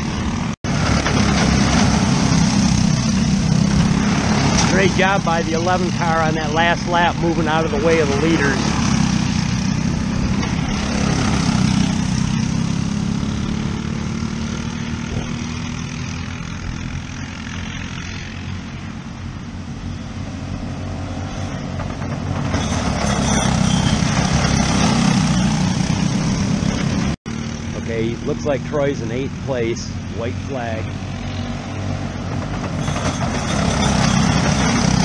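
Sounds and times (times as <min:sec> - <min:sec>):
racing kart engines passing: 0:00.0 - 0:35.0.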